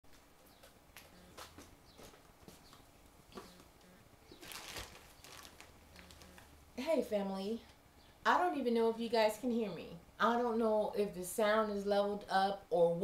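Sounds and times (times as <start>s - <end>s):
clothing rustling: 4.3s - 6.5s.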